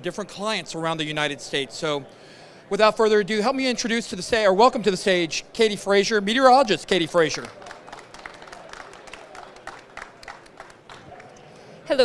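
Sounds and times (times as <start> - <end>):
background murmur: 0.0 - 12.0
light scattered applause: 7.2 - 11.6.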